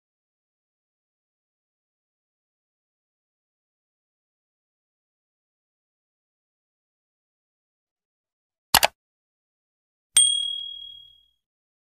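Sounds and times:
bright notification bell ding: 10.2s - 11.2s.

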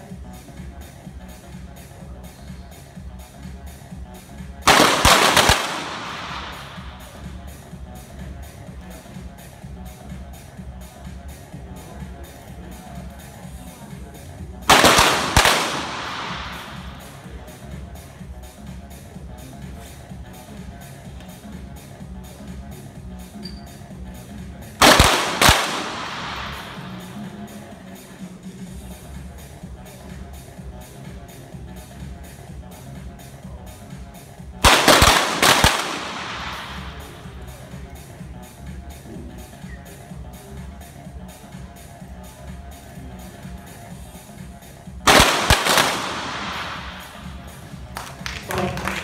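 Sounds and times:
electronic music with steady beat: 0.0s - 23.4s, 24.0s - 48.0s
pistol shots echoing: 4.7s - 7.3s, 14.7s - 17.3s, 24.8s - 27.4s, 34.6s - 37.4s, 45.1s - 49.0s.

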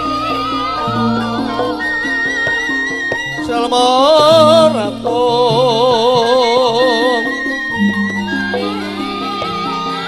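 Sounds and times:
high voice singing: 0.0s - 7.5s
gamelan music: 0.0s - 10.0s.

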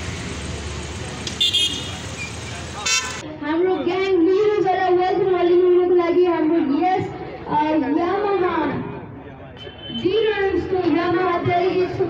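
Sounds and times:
scooter and motorbike engines: 0.0s - 3.2s
horn toots: 1.3s - 3.2s
crowd: 1.3s - 12.0s.

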